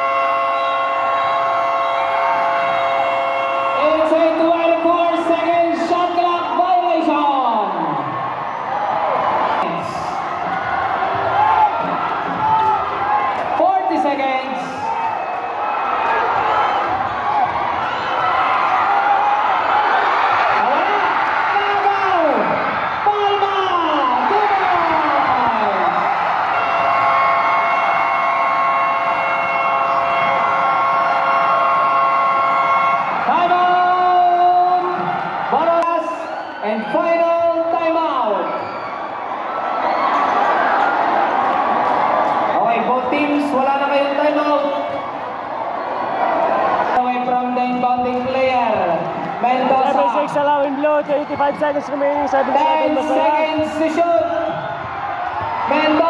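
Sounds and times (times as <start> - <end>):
crowd shouting and cheering: 0.0 - 56.0.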